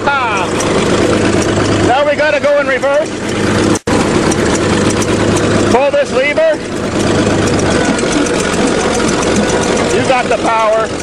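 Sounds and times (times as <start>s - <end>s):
bulldozer engine running: 0.0s - 11.0s.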